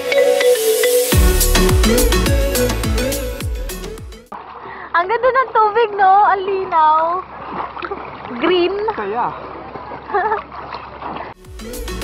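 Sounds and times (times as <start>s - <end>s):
water splashing: 4.3s - 12.0s.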